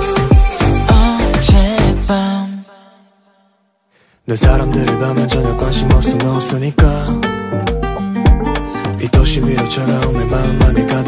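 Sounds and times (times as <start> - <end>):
pop song beat: 0.0 - 2.7, 4.3 - 11.0.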